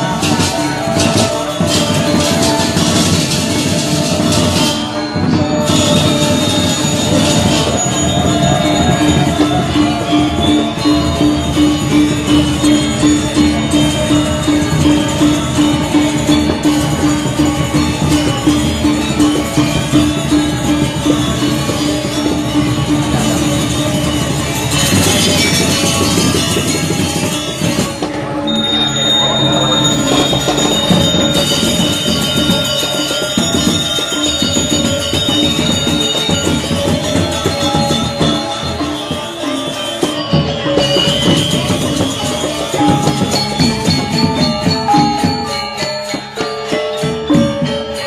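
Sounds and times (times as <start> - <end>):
brass hand bell ringing: 0.0 - 48.0
gamelan music: 0.0 - 48.0.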